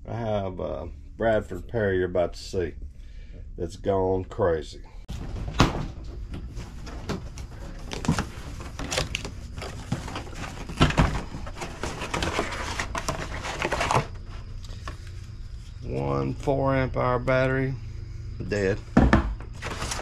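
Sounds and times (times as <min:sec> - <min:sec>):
cardboard box rustling and scraping: 0:06.4 - 0:15.9, 0:19.5 - 0:20.0.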